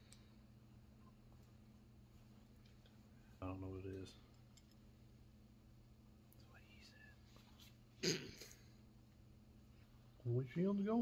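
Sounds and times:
steady low hum: 0.0s - 11.0s
whispered muttering: 6.3s - 7.3s.

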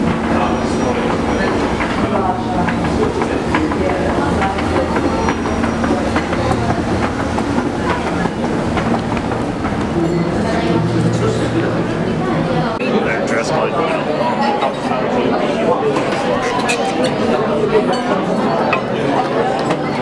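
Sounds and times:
escalator steps rattling and clicking: 0.0s - 10.6s
escalator hum: 0.0s - 13.4s
people's voices: 0.0s - 20.0s.

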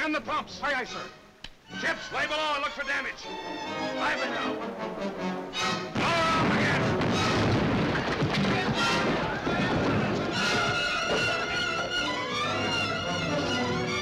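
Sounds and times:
orchestral film music: 1.7s - 7.6s, 8.6s - 14.0s
cannon blast: 5.9s - 10.2s
rumble and crash: 6.0s - 10.8s.

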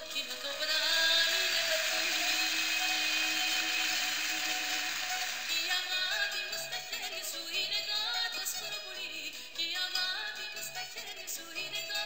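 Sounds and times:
song with sustained note: 0.0s - 7.0s.

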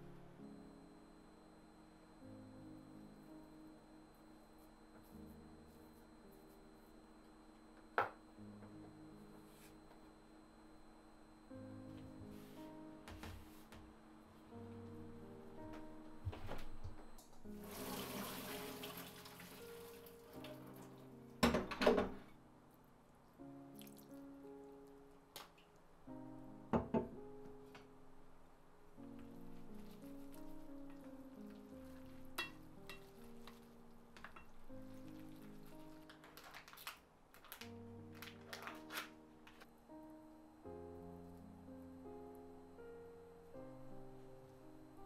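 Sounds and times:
soft background music: 0.0s - 45.0s
running water: 17.5s - 21.1s.

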